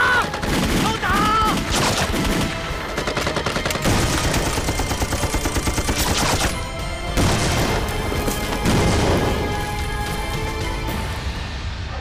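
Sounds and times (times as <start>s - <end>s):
rifle and machine-gun fire: 0.0s - 6.6s, 7.2s - 7.9s.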